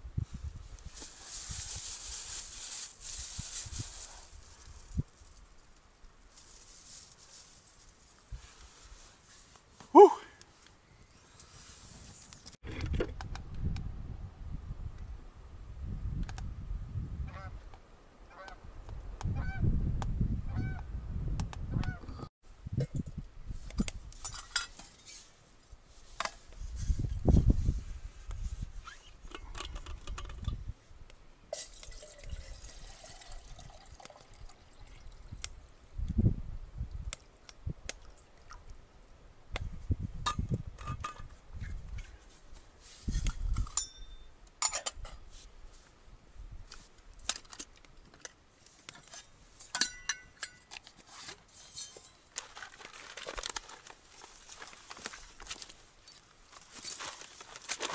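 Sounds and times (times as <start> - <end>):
wind gusts on microphone: 0.0 - 1.9, 11.6 - 17.7, 18.3 - 24.2, 26.6 - 29.0, 32.3 - 37.9, 39.5 - 42.2
metal cookware clinking: 49.7 - 50.7.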